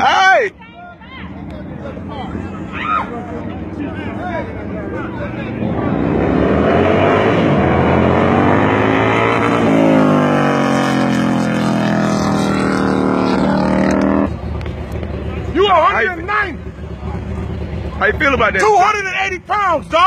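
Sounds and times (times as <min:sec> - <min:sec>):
motorcycle engines at full throttle: 0:01.2 - 0:20.0.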